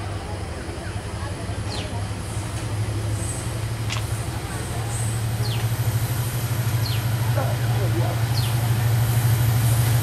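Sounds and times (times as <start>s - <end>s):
diesel locomotive hum: 0.0s - 10.0s
train carriages rumbling past: 0.0s - 10.0s.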